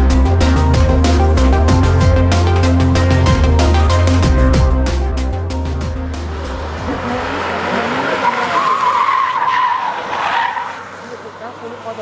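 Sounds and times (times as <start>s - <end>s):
car engine revving: 0.0s - 12.0s
tyres squealing: 6.6s - 12.0s.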